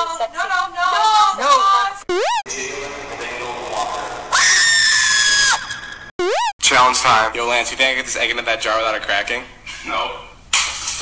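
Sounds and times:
high-pitched scream: 2.1s - 2.6s, 4.3s - 6.6s.

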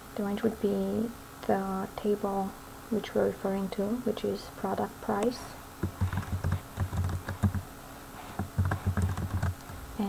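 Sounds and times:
typing on a keyboard: 5.8s - 7.7s, 8.3s - 9.8s.

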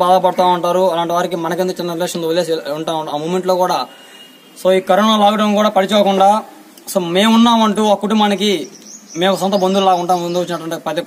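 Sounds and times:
man speaking: 0.0s - 4.0s, 4.6s - 11.0s.

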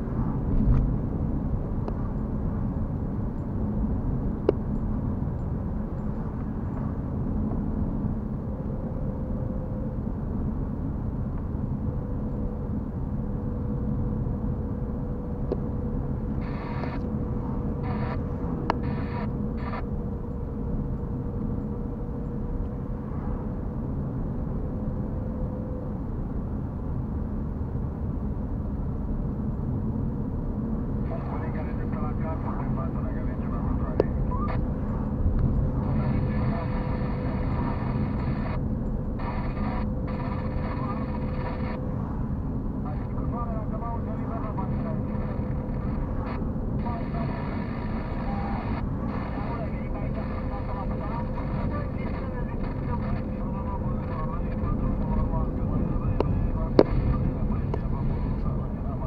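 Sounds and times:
car engine and tyre rumble: 0.0s - 59.0s
thin steady whine: 0.0s - 59.0s
faint voice: 31.0s - 35.0s, 35.7s - 38.6s, 39.2s - 41.8s, 46.8s - 59.0s.

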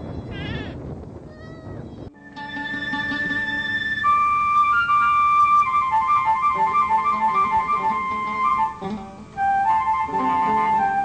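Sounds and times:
livestock bleating: 0.3s - 0.8s.

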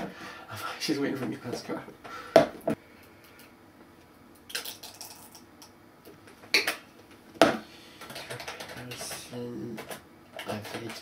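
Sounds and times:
computer keyboard typing: 8.0s - 11.0s.

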